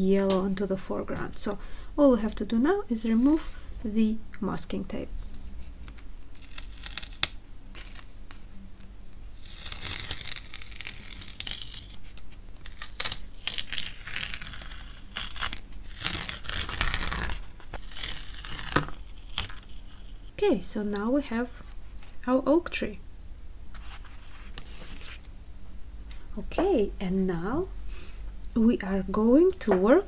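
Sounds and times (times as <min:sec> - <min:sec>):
masking tape ripping off paper: 0:05.8 - 0:20.2.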